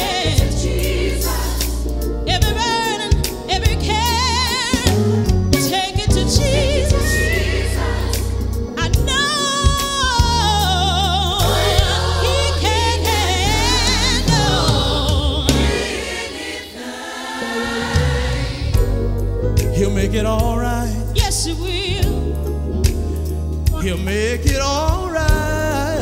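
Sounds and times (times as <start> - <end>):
band with heavy bass line: 0.0 - 16.4, 17.6 - 26.0
choir and lead voices singing: 0.0 - 22.3.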